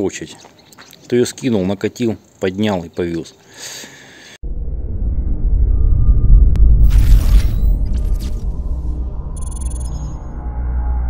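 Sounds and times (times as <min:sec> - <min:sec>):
deep cinematic rumble: 0:04.4 - 0:11.0.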